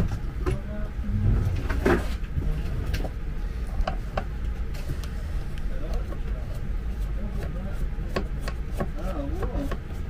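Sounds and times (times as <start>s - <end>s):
steady low rumble: 0.0s - 8.4s.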